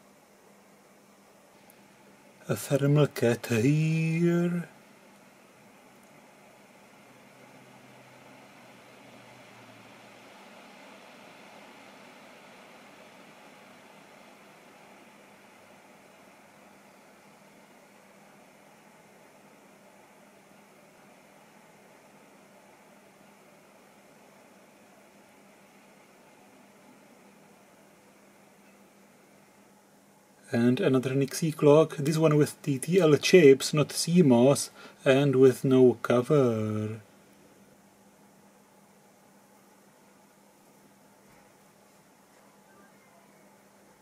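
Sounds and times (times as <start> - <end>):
faint background hiss: 0.0 - 44.0
low steady hum: 0.0 - 44.0.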